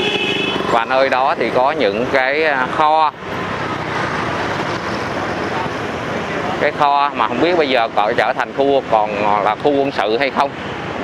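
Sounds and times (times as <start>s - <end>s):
motorbikes running: 0.0s - 11.0s
street traffic noise: 0.0s - 11.0s.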